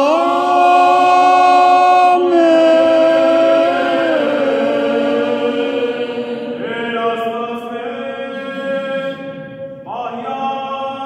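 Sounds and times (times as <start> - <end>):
man chanting a prayer: 0.0 - 4.8, 9.9 - 11.0.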